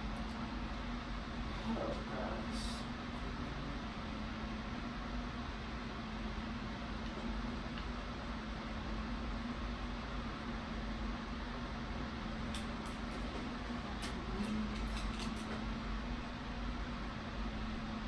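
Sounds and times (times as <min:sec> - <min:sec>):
constant low hum: 0:00.0 - 0:18.0.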